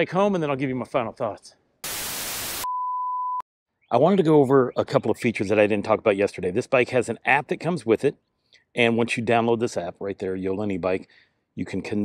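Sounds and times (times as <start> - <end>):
tv static hiss: 1.8 - 2.7
high beep: 2.5 - 3.4.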